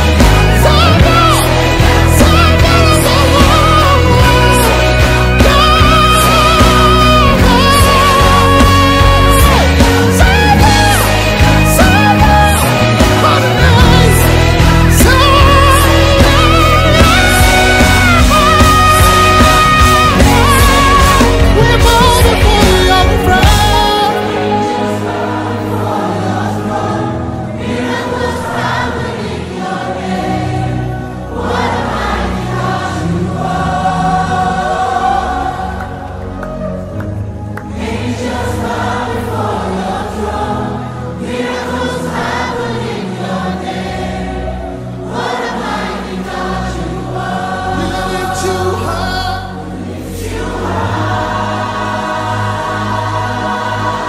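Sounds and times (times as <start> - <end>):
band backing with heavy bass: 0.0 - 54.0
choir singing gospel song: 0.0 - 54.0.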